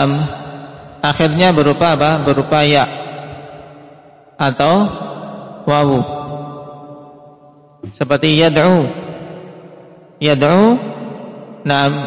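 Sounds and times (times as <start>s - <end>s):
man speaking with echo: 0.0s - 12.0s.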